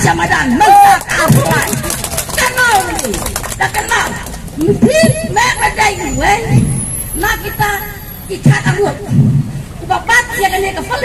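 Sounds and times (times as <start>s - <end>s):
woman's amplified voice: 0.0s - 9.2s, 9.8s - 11.0s.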